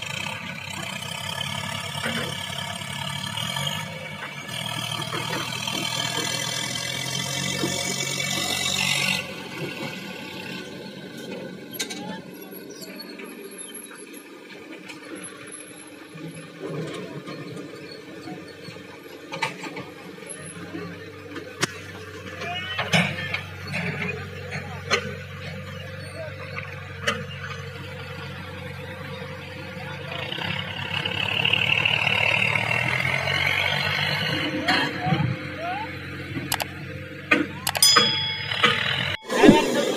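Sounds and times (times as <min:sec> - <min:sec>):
diesel engines running: 0:00.0 - 0:39.9.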